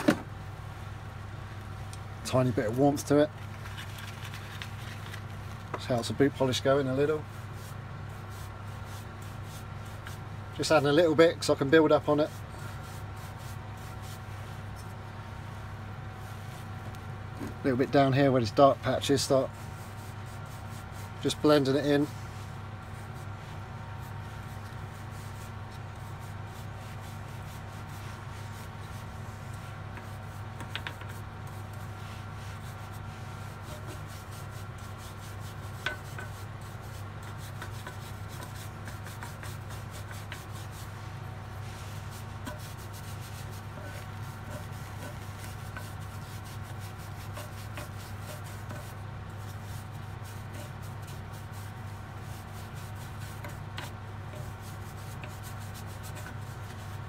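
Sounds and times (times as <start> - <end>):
steady low hum: 0.0 - 57.0
brush scrubbing stone: 6.6 - 14.8, 18.6 - 57.0.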